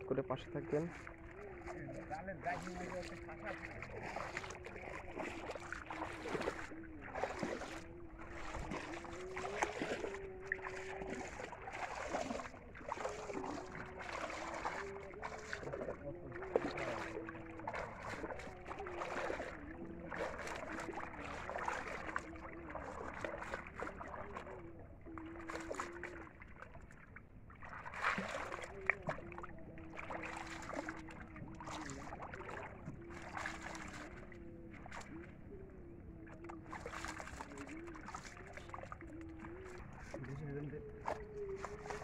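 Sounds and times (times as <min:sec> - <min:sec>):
faint wavering hum: 0:00.0 - 0:42.0
water sloshing and dripping: 0:00.0 - 0:42.0.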